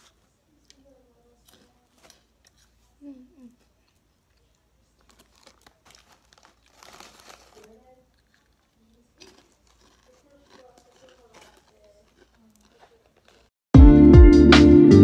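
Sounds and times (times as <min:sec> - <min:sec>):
plastic snack bag crinkling: 0:00.0 - 0:13.5.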